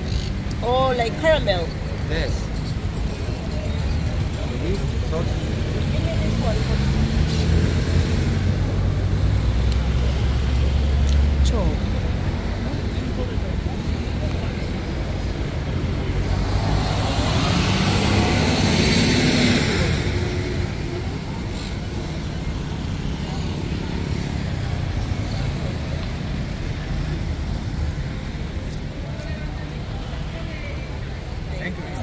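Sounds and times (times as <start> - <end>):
road traffic noise: 0.0 - 32.0
vehicle passing by: 15.9 - 27.5.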